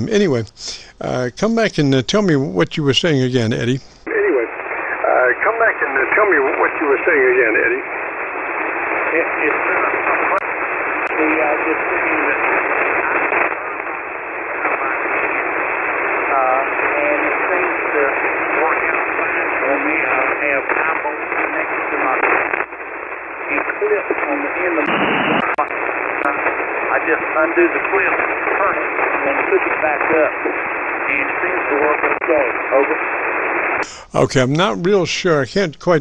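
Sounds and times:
weak radio voice: 0:00.0 - 0:07.9, 0:09.1 - 0:10.4, 0:11.0 - 0:13.8, 0:14.6 - 0:15.2, 0:16.3 - 0:22.4, 0:23.5 - 0:33.1, 0:33.8 - 0:36.0
radio band noise: 0:00.0 - 0:36.0.

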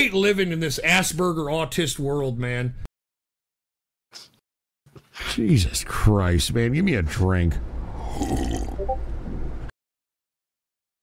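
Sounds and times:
long rough burp: 0:08.0 - 0:08.8.

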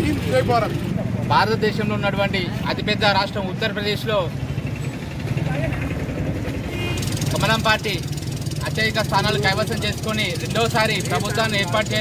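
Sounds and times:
man speaking: 0:07.3 - 0:12.0.

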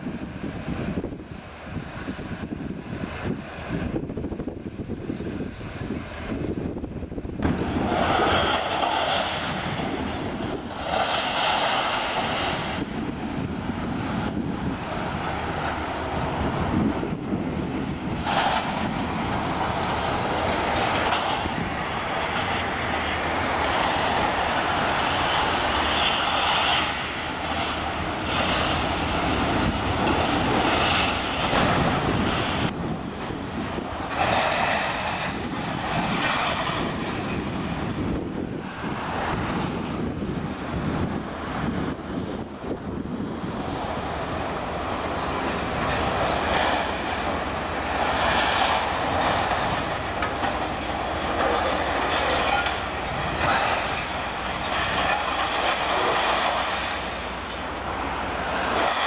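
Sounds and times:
diesel engines running: 0:00.0 - 0:59.0.

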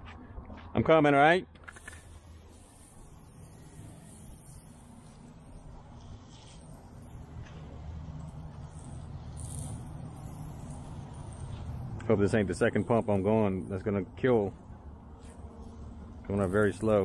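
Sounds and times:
water spraying onto concrete: 0:01.7 - 0:14.5, 0:15.2 - 0:17.0
pressure washer humming: 0:01.7 - 0:17.0.

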